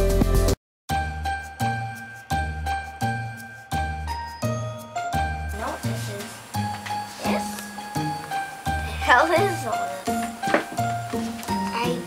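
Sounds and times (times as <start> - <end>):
background music: 0.0 - 12.0
tinkling bell-like tune: 0.9 - 6.4, 7.0 - 10.0.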